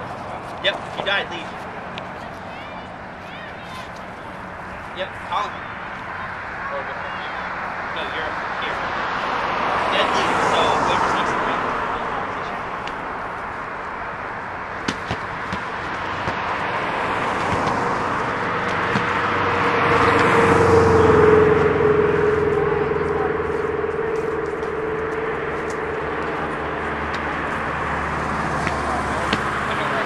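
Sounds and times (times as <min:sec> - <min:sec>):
motor vehicle passing: 0:00.0 - 0:30.0.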